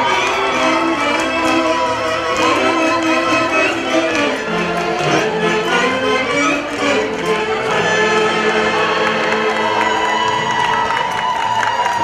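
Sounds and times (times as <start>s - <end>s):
live folk band music: 0.0s - 9.0s
crowd cheering: 0.0s - 12.0s.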